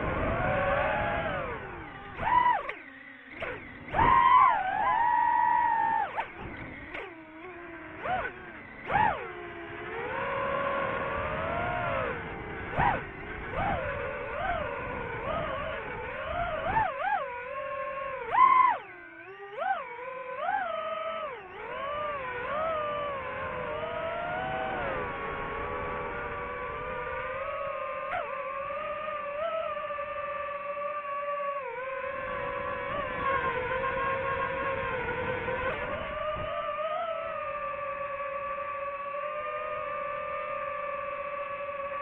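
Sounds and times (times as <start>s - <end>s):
drone motors whining: 0.0s - 42.0s.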